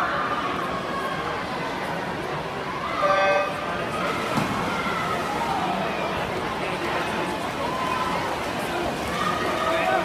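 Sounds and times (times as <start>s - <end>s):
crowd chatter in pool hall: 0.0s - 10.0s.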